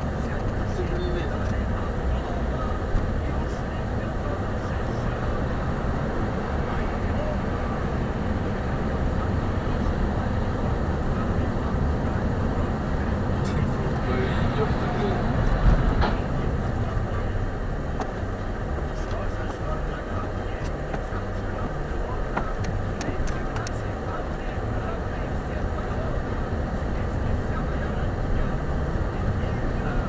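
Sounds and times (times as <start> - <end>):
car road and engine noise: 0.0 - 30.0.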